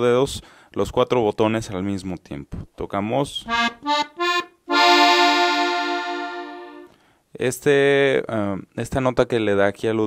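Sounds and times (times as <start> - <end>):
accordion chord: 3.5 - 7.0.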